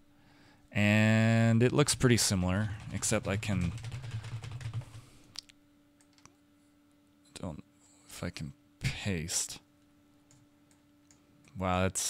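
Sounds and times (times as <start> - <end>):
computer keyboard typing: 2.0 - 5.0.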